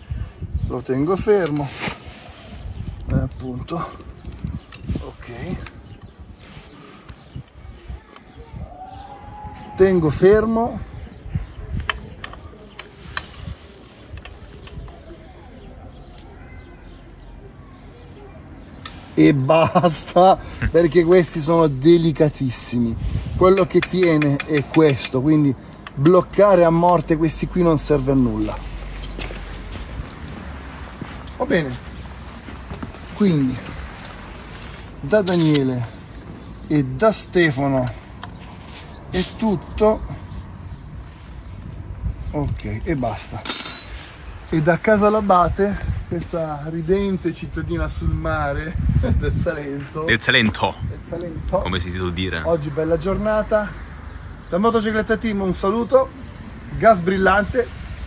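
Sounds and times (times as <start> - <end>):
wind rumble on microphone: 0.0 - 1.2, 2.3 - 16.2, 22.7 - 24.0, 38.2 - 43.4, 45.1 - 52.1.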